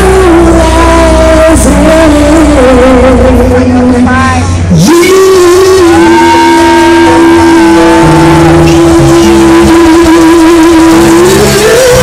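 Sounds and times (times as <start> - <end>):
singer holding long note: 0.0 - 12.0
live band playing loud: 5.9 - 12.0.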